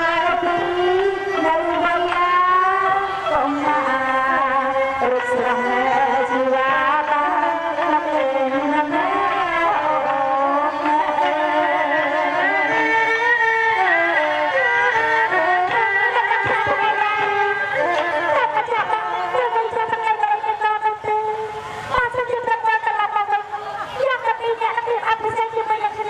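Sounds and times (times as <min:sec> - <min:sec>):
instrumental accompaniment: 0:00.0 - 0:26.0
woman singing opera: 0:00.0 - 0:26.0.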